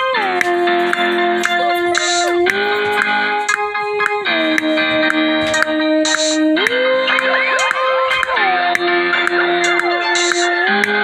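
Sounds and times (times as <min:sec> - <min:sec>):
beat of sharp ticks: 0:00.2 - 0:11.0.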